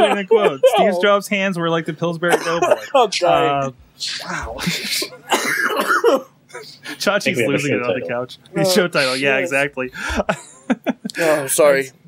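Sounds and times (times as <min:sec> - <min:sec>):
man laughing: 0:00.0 - 0:01.1, 0:02.3 - 0:03.6, 0:04.5 - 0:05.4, 0:08.8 - 0:11.5.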